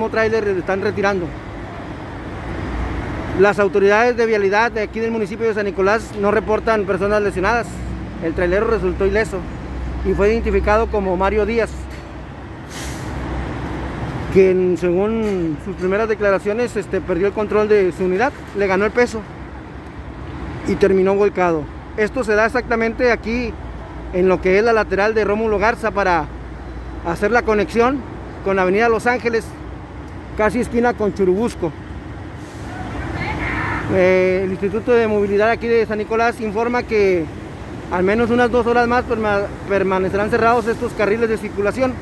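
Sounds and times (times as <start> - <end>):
road traffic rumble: 0.0 - 42.0
short hiss: 12.6 - 13.2.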